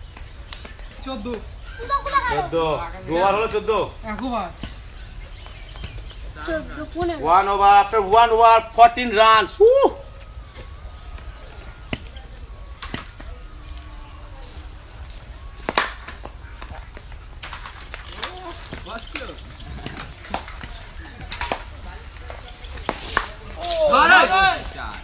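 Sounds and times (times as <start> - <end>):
faint distant voices: 0.0 - 25.0
wind rumble on microphone: 18.5 - 22.8.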